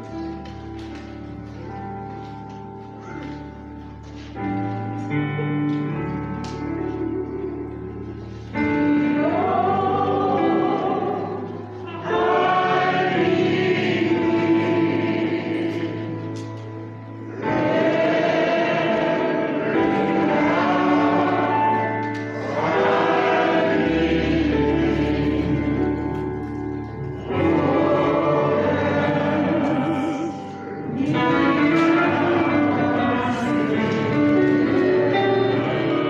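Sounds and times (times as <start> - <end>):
musical accompaniment: 0.0 - 36.0
gospel choir singing a hymn: 6.9 - 36.0.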